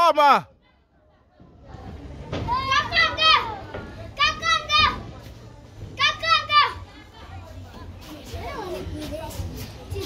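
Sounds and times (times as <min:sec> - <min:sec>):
background noise: 0:00.0 - 0:10.0.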